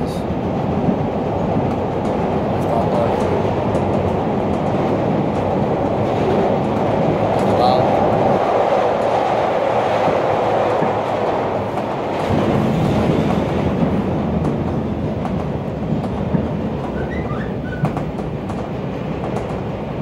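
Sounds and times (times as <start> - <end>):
train wheels rumbling on rails: 0.0 - 20.0
clicks over rail joints: 10.0 - 19.8.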